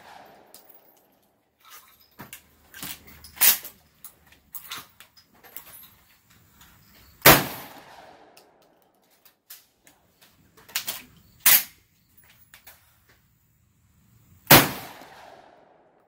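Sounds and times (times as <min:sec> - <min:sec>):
shotgun blast: 0:00.0 - 0:00.6, 0:07.2 - 0:08.4, 0:14.5 - 0:15.7.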